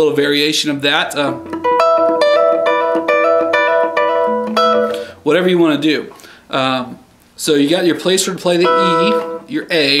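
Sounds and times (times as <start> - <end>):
electric guitar blues lick: 1.3 - 5.2, 8.6 - 9.5.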